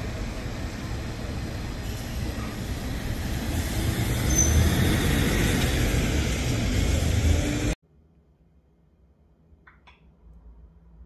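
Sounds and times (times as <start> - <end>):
city street traffic: 0.0 - 7.8
brief high squeal: 4.2 - 4.9.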